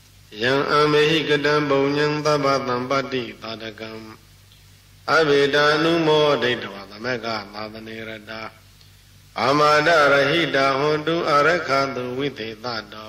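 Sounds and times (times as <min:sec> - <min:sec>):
man chanting: 0:00.3 - 0:04.2, 0:05.0 - 0:08.6, 0:09.4 - 0:13.0.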